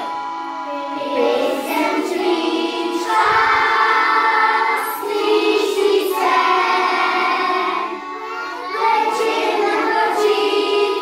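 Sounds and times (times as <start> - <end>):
children singing: 0.0 - 11.0
instrumental accompaniment: 0.0 - 11.0.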